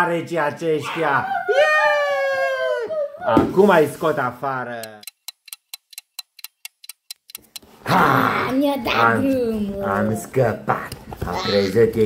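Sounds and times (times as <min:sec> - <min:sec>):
quick ticking clicks: 0:04.8 - 0:07.7.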